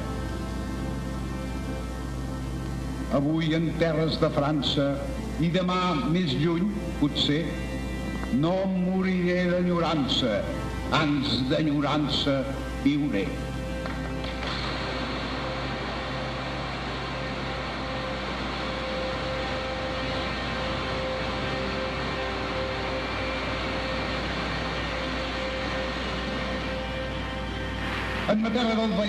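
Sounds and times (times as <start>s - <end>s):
droning sound bed: 0.0s - 29.0s
low notes: 0.0s - 29.0s.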